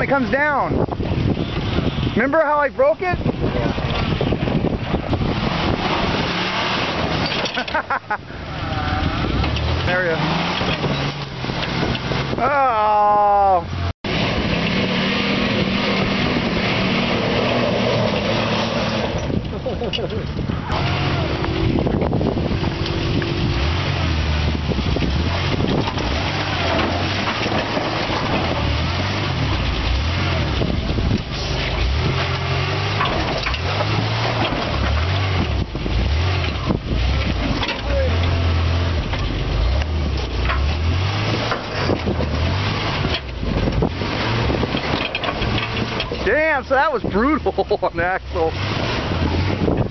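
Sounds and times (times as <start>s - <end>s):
truck engine surging: 0.0s - 49.9s.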